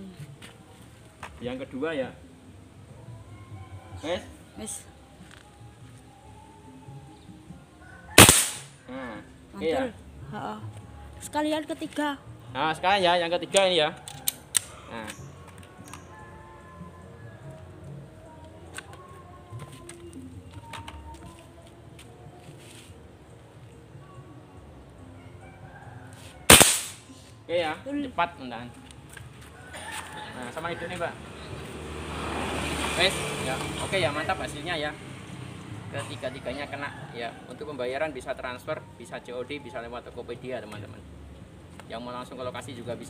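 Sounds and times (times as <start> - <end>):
air rifle shot: 8.2 - 8.8, 26.5 - 27.1.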